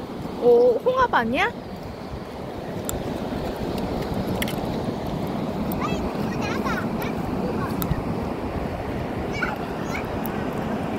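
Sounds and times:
surf on the shore: 0:00.0 - 0:10.9
wind on microphone: 0:00.0 - 0:10.9.

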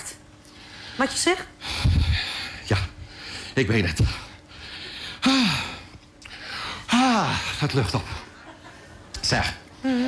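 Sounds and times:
breath: 0:00.5 - 0:01.0, 0:01.6 - 0:03.6, 0:04.5 - 0:06.9.

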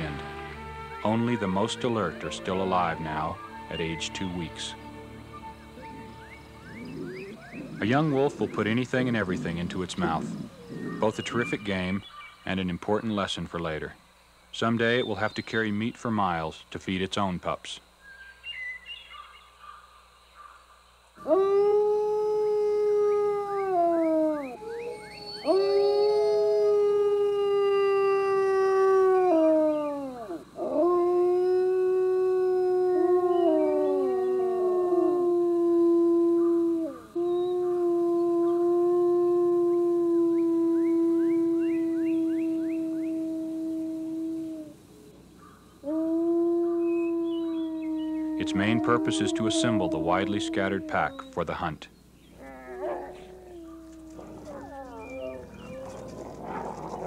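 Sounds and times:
wolves howling: 0:00.0 - 0:12.0, 0:21.2 - 0:57.0.

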